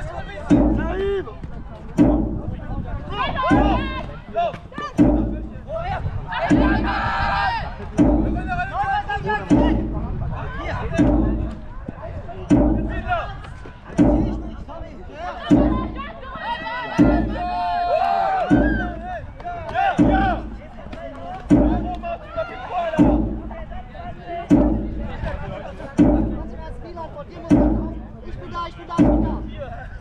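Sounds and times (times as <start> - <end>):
drum beaten steadily: 0.0 - 30.0
voices shouting: 6.3 - 7.8, 15.1 - 23.3.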